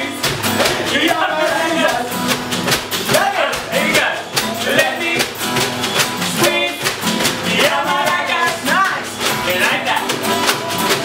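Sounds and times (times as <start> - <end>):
man singing: 0.0 - 2.4, 3.0 - 11.0
strummed acoustic guitar: 0.0 - 11.0.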